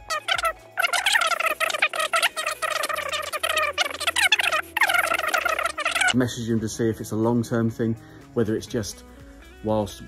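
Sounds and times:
high warbling voice-like sound: 0:00.0 - 0:06.2
background music with bass line: 0:00.0 - 0:10.0.

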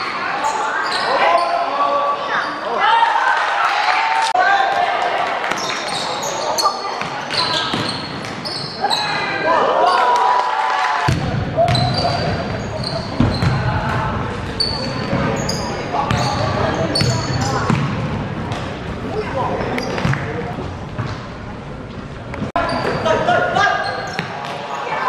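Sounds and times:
sneakers squeaking on wooden court: 0:00.4 - 0:01.6, 0:05.5 - 0:09.2, 0:11.1 - 0:21.3, 0:22.5 - 0:25.0
basketball bouncing: 0:11.1 - 0:15.4, 0:16.1 - 0:18.9.

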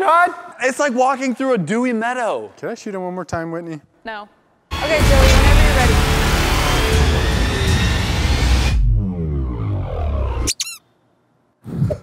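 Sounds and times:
tape stop music slowing down: 0:05.0 - 0:10.5
squeaky chirp: 0:10.5 - 0:10.9.

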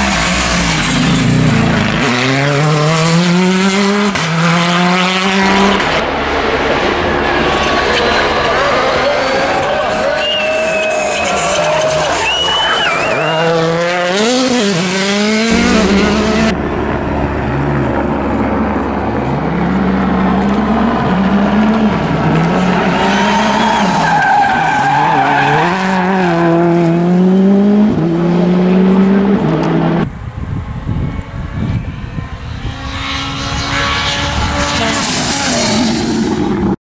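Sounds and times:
rally car engines revving: 0:00.0 - 0:36.8.

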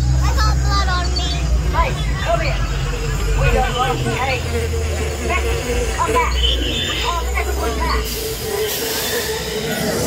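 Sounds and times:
ride vehicle rumble: 0:00.0 - 0:10.0
voices talking: 0:00.0 - 0:10.0.

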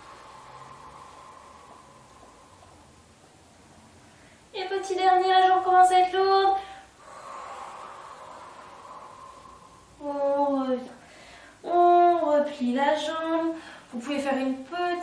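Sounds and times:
woman breathing out: 0:00.0 - 0:03.0, 0:06.6 - 0:10.1, 0:11.0 - 0:11.6.

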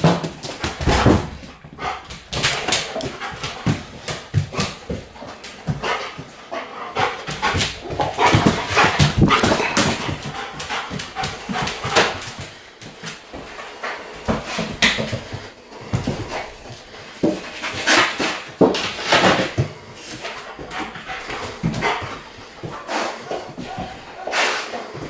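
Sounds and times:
dog noises: 0:00.8 - 0:12.4
dog claws clicking on tiles: 0:01.8 - 0:06.4.

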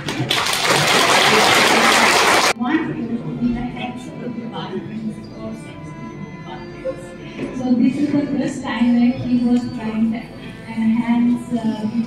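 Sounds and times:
audience applauding: 0:00.0 - 0:02.6.

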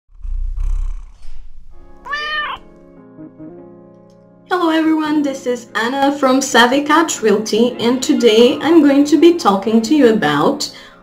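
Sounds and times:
cat purring: 0:00.1 - 0:01.8
cat meowing: 0:02.0 - 0:02.8.

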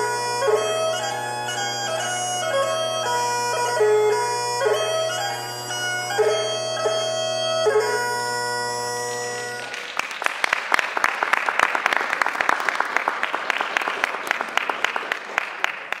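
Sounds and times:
bagpipes playing: 0:00.0 - 0:10.0
audience applause: 0:09.6 - 0:16.0.

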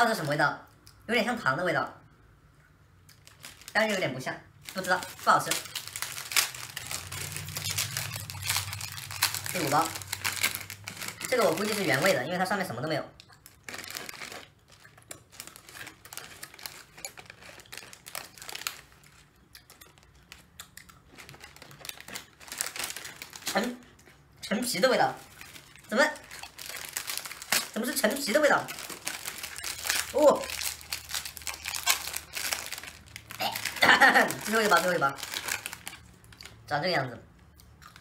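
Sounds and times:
plastic snack bag crinkling: 0:03.1 - 0:36.7
fingers rummaging among crackers: 0:04.6 - 0:12.4, 0:13.4 - 0:24.3, 0:25.2 - 0:36.5.

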